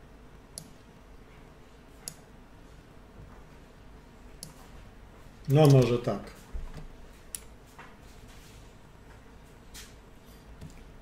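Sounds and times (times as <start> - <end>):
faint room hum: 0.0 - 11.0
computer mouse clicks: 0.5 - 0.8, 2.0 - 2.2, 4.4 - 4.6, 5.6 - 5.9, 6.8 - 7.5, 10.6 - 10.9.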